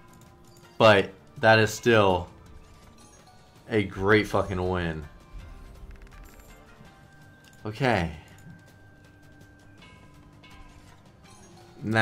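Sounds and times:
slot game music: 0.0s - 12.0s
man talking: 0.8s - 2.3s, 3.7s - 5.1s, 7.6s - 8.3s, 11.8s - 12.0s.

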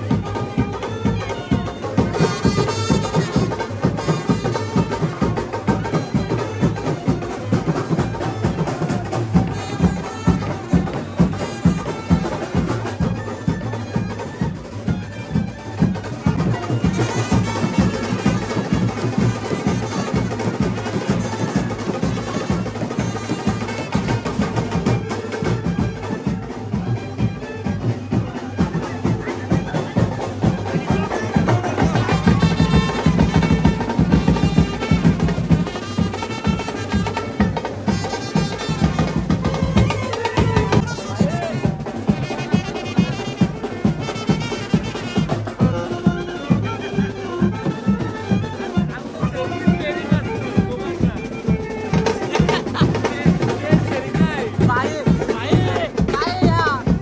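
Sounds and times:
brass band playing: 0.0s - 57.0s
drums beating: 0.0s - 57.0s.

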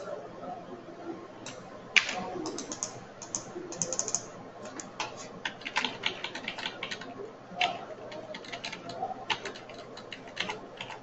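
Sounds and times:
computer keyboard typing: 2.0s - 11.0s.

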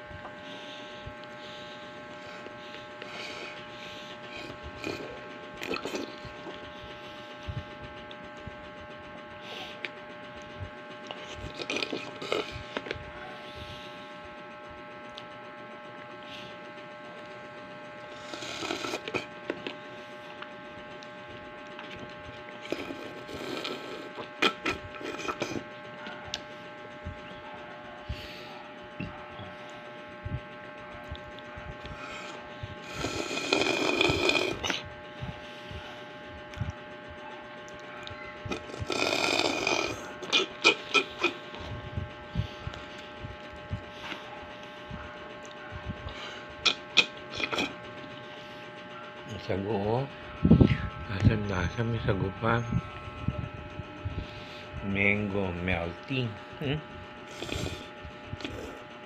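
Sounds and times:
steady hum: 0.0s - 59.0s
man drinking and chewing: 0.1s - 8.2s, 9.7s - 13.1s, 18.1s - 27.4s, 28.0s - 36.8s, 37.5s - 44.7s, 45.4s - 48.4s, 57.0s - 58.9s.

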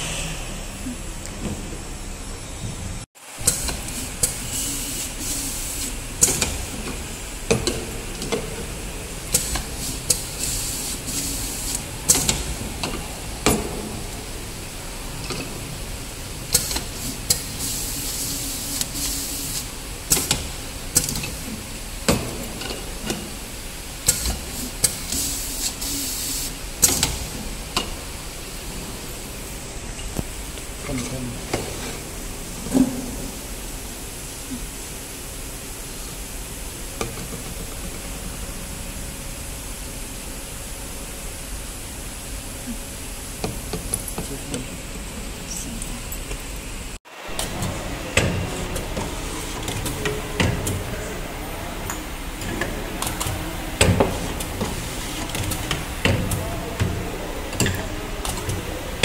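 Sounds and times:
machine hum: 0.0s - 59.0s
machine clicks: 18.7s - 21.4s.

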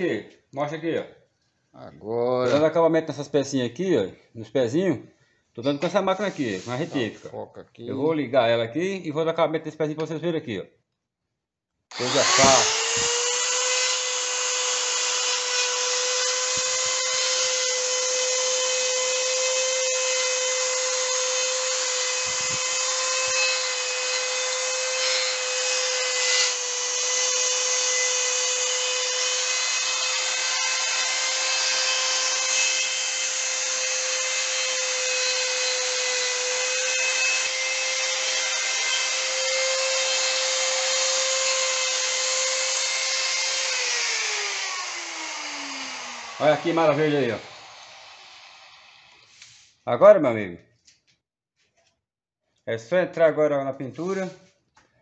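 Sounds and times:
rotary tool whining: 11.9s - 19.6s, 20.2s - 49.5s.

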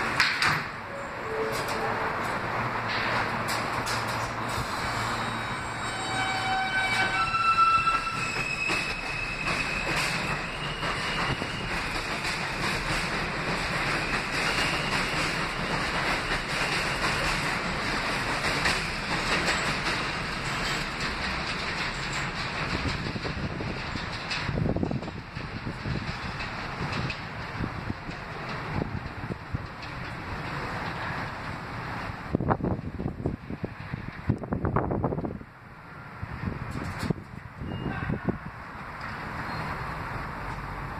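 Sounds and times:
clicks over rail joints: 0.0s - 0.8s, 1.5s - 4.6s, 8.4s - 31.7s
train wheels on rails: 0.0s - 40.9s.

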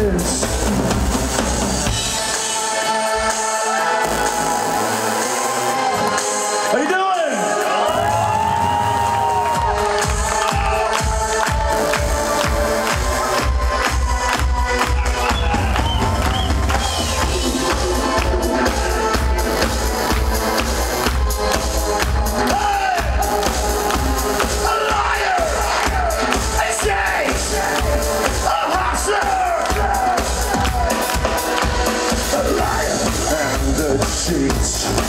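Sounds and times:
live drum kit beat: 0.0s - 3.3s, 8.8s - 35.0s
synthesizers: 0.0s - 35.0s
audience cheering: 3.7s - 19.7s, 24.6s - 33.6s.

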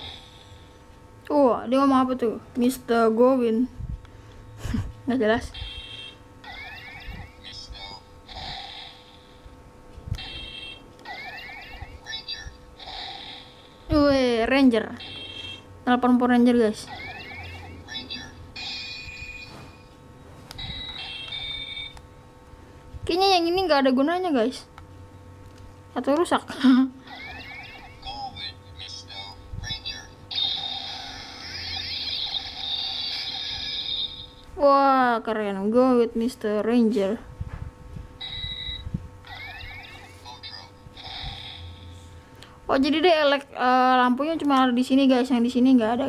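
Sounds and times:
toy electronic sound effects: 5.5s - 9.4s, 10.2s - 14.0s, 15.0s - 15.7s, 16.8s - 19.9s, 20.6s - 22.0s, 27.0s - 34.4s, 38.2s - 41.9s.

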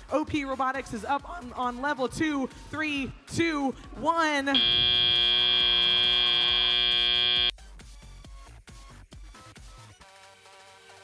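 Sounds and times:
electronic buzzer tone: 4.6s - 7.5s.

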